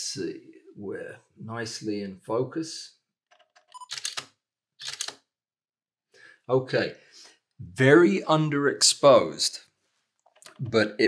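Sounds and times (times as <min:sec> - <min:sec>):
camera shutter clicks: 0:03.9 - 0:05.2.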